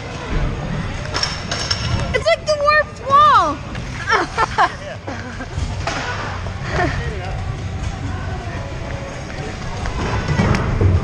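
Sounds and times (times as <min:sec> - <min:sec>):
rumbling clattering noise: 0:08.9 - 0:11.0.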